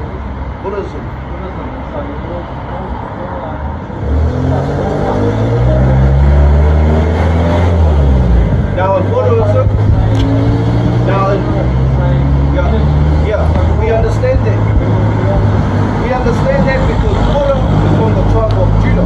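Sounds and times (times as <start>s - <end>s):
large vehicle engine droning: 0.0s - 19.0s.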